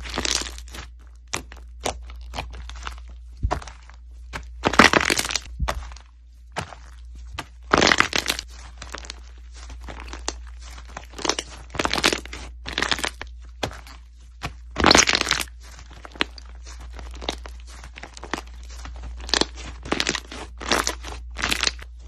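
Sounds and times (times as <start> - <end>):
slime crackling and popping: 0.0 - 3.8, 4.5 - 5.8, 7.4 - 22.0
low steady hum: 0.0 - 22.0.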